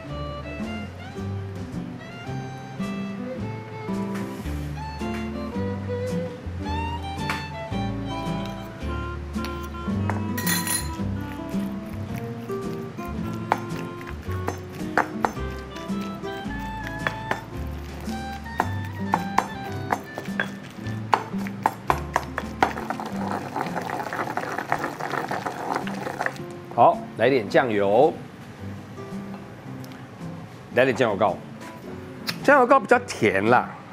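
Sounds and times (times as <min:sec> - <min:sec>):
background music with bass line: 0:00.0 - 0:12.2
stone pestle knocking in mortar: 0:09.4 - 0:26.4.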